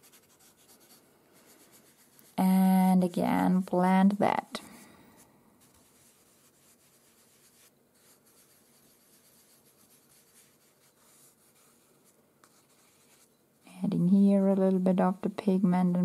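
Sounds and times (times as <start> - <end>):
pastel rubbing on paper: 0.0 - 2.4, 5.6 - 13.3.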